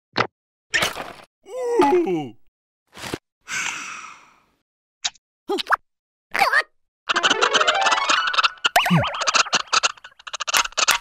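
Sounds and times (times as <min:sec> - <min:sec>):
breathy sigh: 0:03.5 - 0:04.6.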